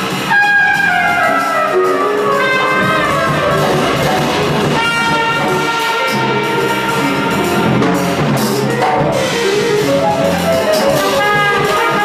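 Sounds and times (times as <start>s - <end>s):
drums and cymbals: 0.0s - 12.0s
brass horns holding notes: 0.2s - 8.7s, 10.9s - 12.0s.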